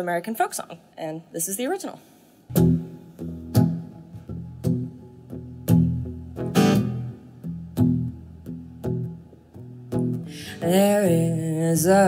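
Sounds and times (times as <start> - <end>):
acoustic guitar strumming: 2.5 - 12.0.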